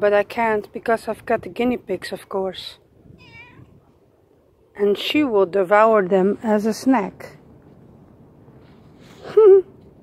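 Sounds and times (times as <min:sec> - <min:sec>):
cat meowing faintly: 0:03.1 - 0:04.0.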